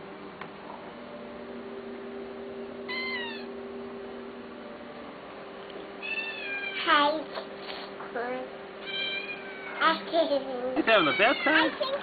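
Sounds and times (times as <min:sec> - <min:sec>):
low electrical hum: 0:00.0 - 0:12.0
cat meowing: 0:02.9 - 0:03.5, 0:06.0 - 0:06.9, 0:08.8 - 0:09.8, 0:10.9 - 0:12.0.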